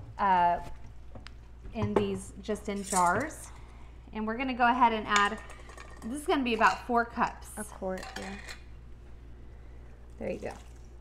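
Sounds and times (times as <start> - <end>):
low steady hum: 0.0 - 11.0
metal spoon clinking on cookware: 7.8 - 8.6.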